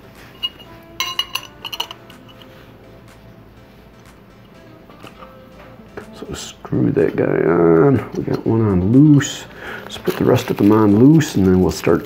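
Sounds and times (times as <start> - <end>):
metal bolts clinking: 0.3 - 2.5.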